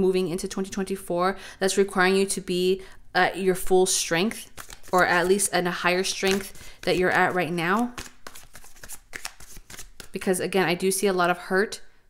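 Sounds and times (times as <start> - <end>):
cards being shuffled: 4.4 - 10.2.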